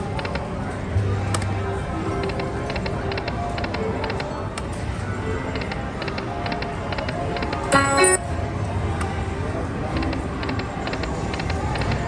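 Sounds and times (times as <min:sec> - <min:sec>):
casino background noise: 0:00.0 - 0:12.0
slot machine electronic notes and chimes: 0:07.2 - 0:08.3.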